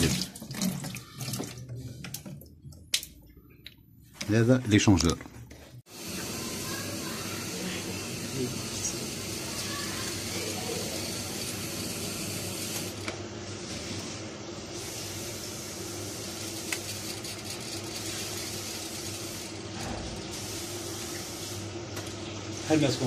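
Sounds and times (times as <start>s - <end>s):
gas boiler rushing hiss: 5.8s - 23.0s.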